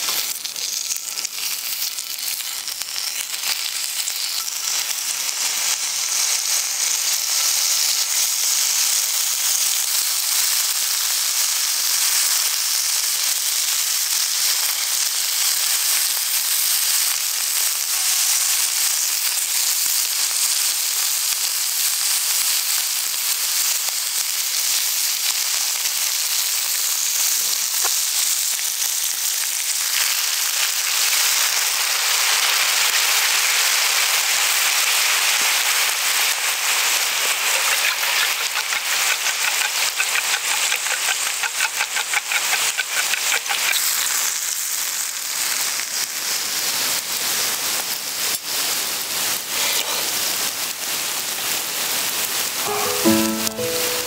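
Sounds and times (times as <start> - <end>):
meat sizzling in a frying pan: 0.0 - 52.8.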